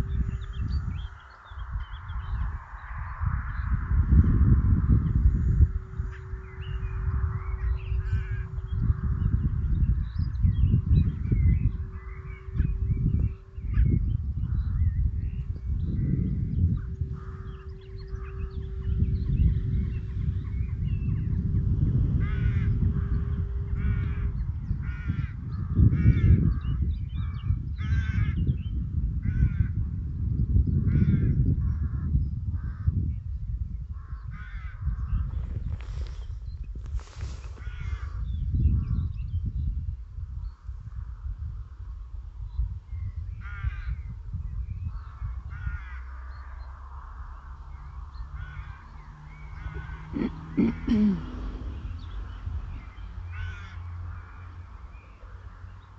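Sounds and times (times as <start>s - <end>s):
wind buffeting microphone: 0.0s - 55.9s
bird harsh calls: 5.0s - 21.5s, 37.0s - 39.0s, 47.7s - 55.9s.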